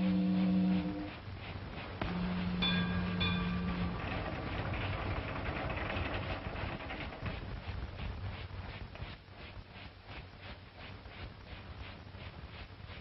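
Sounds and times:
ship's steam whistle blasts: 0.0 - 1.1
steady hiss: 0.0 - 13.0.

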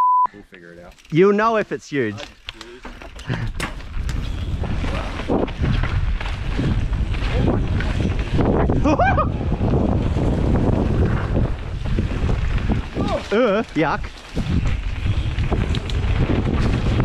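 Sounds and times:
bike trail rumble: 0.4 - 17.0
wind rushing over microphone: 3.3 - 17.0.

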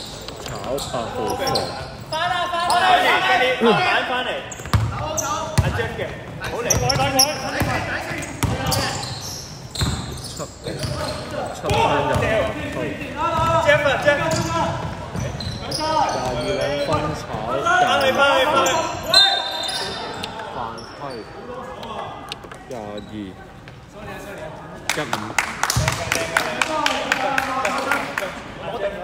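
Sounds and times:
players calling out: 0.1 - 23.6.

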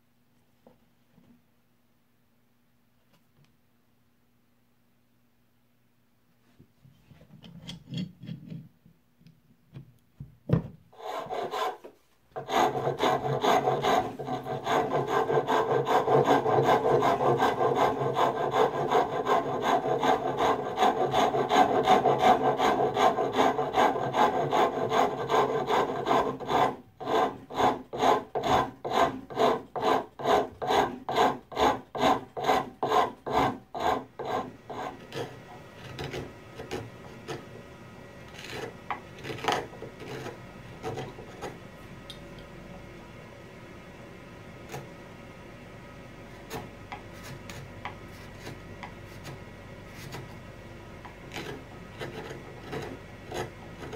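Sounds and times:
hand file rasping wood: 11.0 - 37.4, 38.3 - 41.6, 51.3 - 53.9.

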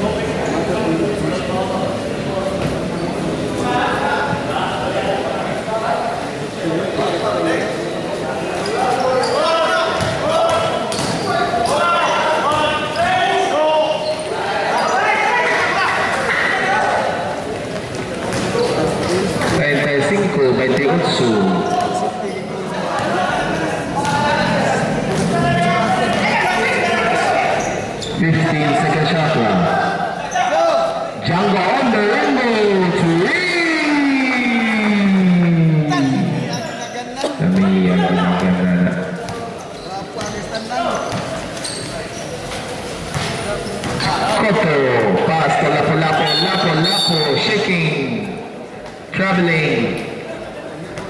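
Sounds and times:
basketball bouncing on court: 10.0 - 11.8, 17.8 - 19.6, 43.1 - 44.2.

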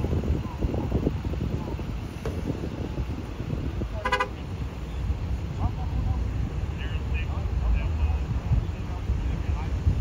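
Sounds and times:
vehicle horn toot: 4.0 - 4.4.

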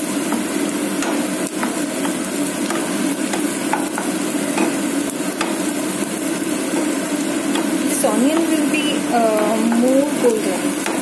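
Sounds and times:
onions sizzling in oil: 0.0 - 11.0.

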